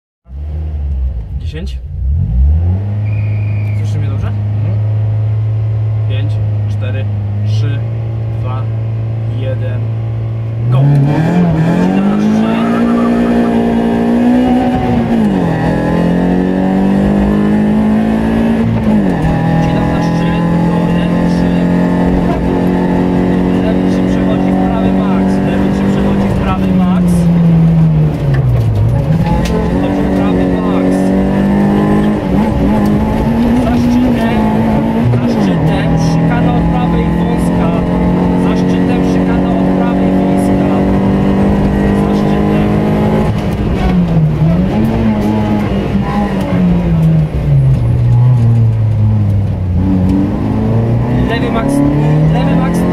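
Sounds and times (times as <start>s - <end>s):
rally car engine accelerating: 0.3s - 52.9s.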